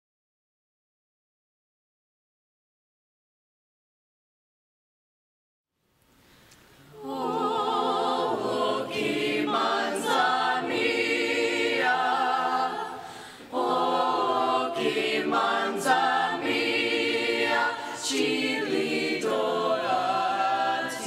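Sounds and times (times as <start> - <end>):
choir singing in harmony: 6.9 - 21.0.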